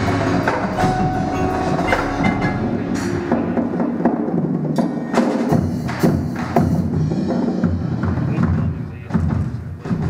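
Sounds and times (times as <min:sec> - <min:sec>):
mallet keyboard notes: 0:00.0 - 0:05.3
marching drums striking: 0:00.0 - 0:10.0.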